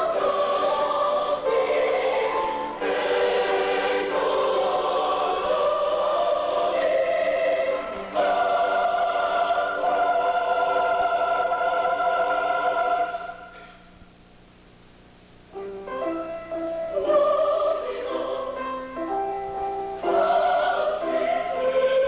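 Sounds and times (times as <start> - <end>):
choir singing held chords: 0.0 - 13.7, 16.6 - 22.0.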